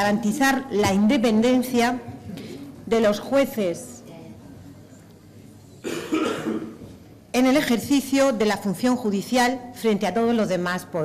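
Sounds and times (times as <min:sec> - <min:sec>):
throat-clearing cough: 0:05.8 - 0:06.9.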